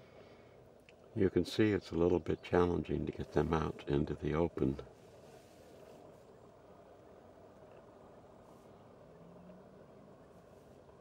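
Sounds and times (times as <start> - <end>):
faint low background rumble: 0.0 - 11.0.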